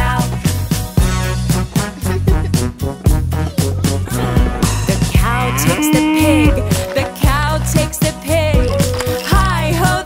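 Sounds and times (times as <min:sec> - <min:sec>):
backing music with bass: 0:00.0 - 0:10.0
person imitating cow moo: 0:04.1 - 0:07.0.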